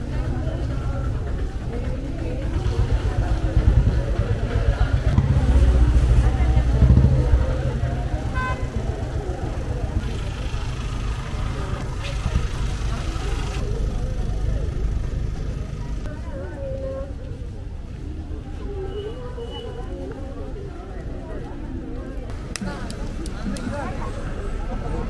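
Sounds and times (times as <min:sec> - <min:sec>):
crowd chatter: 0:00.0 - 0:25.0
vehicle engine rumble: 0:00.0 - 0:25.0.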